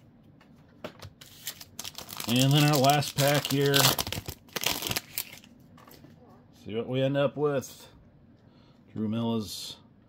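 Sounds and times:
foil wrapper crinkling and tearing: 1.2s - 5.5s.

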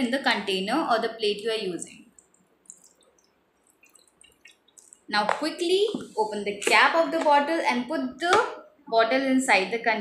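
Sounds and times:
water dripping and trickling: 1.9s - 5.4s.

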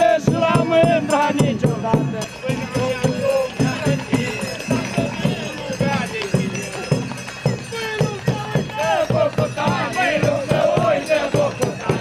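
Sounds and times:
voices singing folk music: 0.0s - 12.0s.

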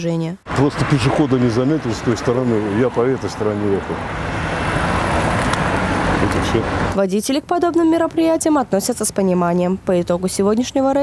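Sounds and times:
car passing close by: 0.5s - 7.0s.

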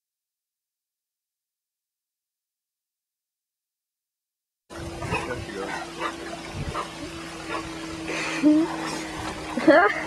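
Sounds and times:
steady low hum: 4.7s - 10.0s.

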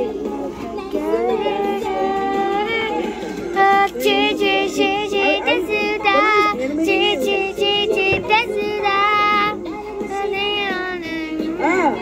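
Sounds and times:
backing track: 0.0s - 12.0s
girl singing into a microphone: 0.0s - 12.0s.

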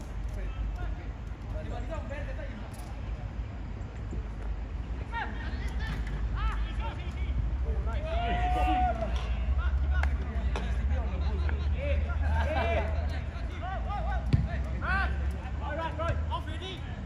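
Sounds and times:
distant shouts of players: 5.0s - 17.0s.

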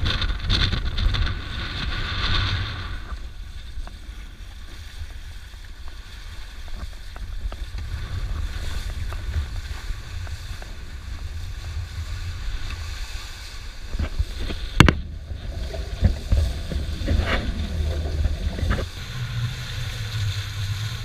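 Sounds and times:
water splashing against hull: 0.0s - 21.0s
wind buffeting microphone: 0.0s - 21.0s.

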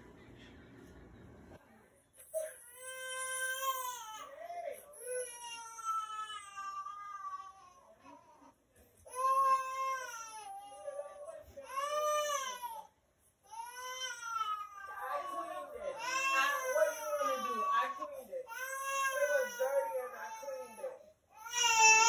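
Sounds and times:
infant crying: 2.4s - 22.0s.

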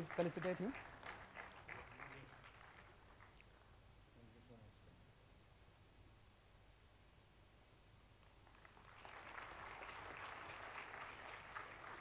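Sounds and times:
audience applause: 0.0s - 2.9s, 8.4s - 12.0s.

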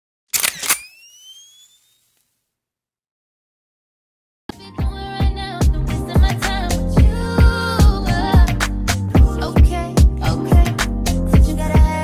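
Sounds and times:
camera shutter clicks: 0.3s - 2.1s
thin high rising tone: 0.8s - 2.2s.

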